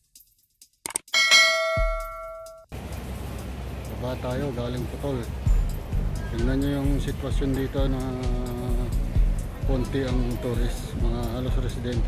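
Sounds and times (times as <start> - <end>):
quick clicks: 0.8 - 1.1
bright bell ding: 1.1 - 2.7
street noise: 1.2 - 12.0.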